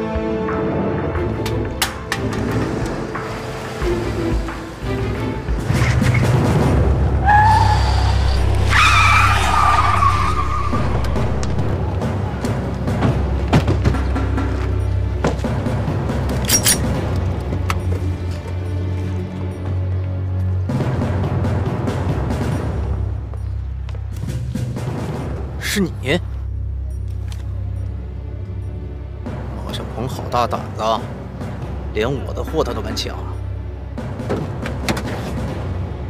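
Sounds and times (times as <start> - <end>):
tense dramatic music: 0.0 - 36.0
car tyres squealing: 7.1 - 11.9.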